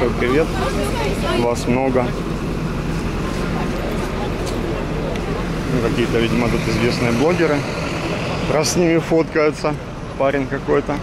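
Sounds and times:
faint voices: 0:00.0 - 0:11.0
low street rumble: 0:00.0 - 0:11.0.

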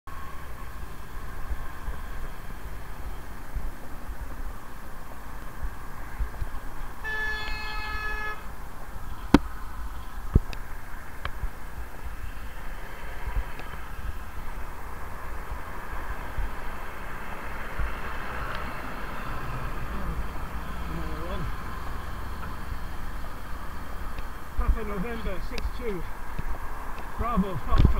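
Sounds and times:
wind and road noise: 0:00.0 - 0:27.9
car horn blast: 0:07.0 - 0:08.5.

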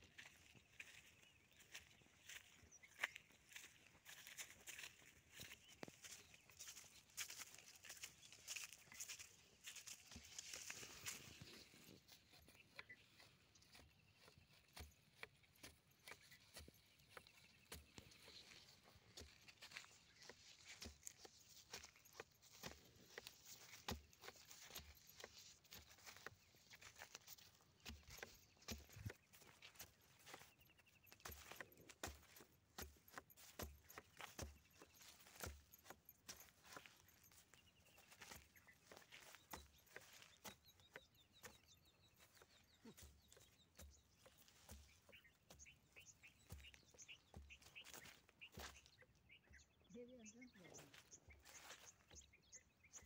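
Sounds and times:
footsteps on dry soil: 0:00.0 - 0:53.0.

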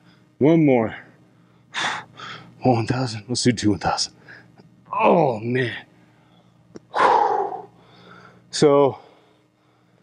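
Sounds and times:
man breathing out heavily: 0:06.9 - 0:10.0.

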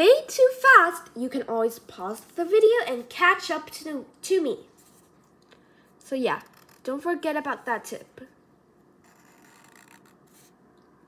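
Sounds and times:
marker drawing on paper: 0:09.0 - 0:10.6.

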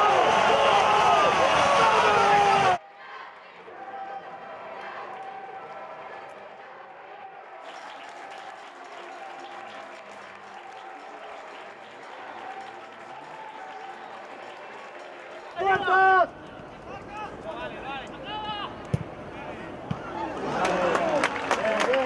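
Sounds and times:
stadium crowd cheering: 0:00.0 - 0:22.0.

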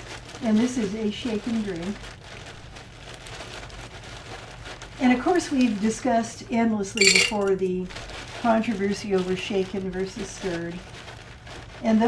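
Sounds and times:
plastic bag crinkling: 0:00.0 - 0:12.0
ice cubes shifting: 0:06.9 - 0:12.0.

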